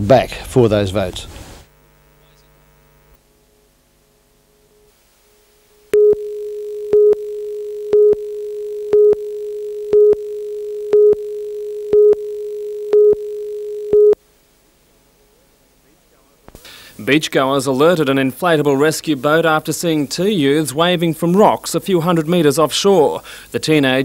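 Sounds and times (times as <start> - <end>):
steady line-up tone: 1.6 - 14.5
countdown beeps: 6.0 - 14.2.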